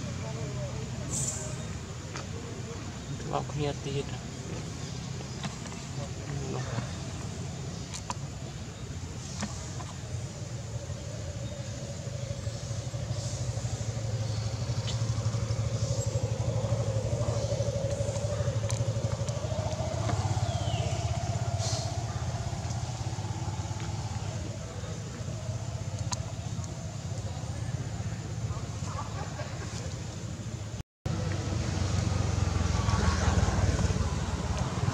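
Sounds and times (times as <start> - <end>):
motor engine running: 0.1 - 29.8, 31.1 - 34.9
faint clicks: 25.1 - 27.3.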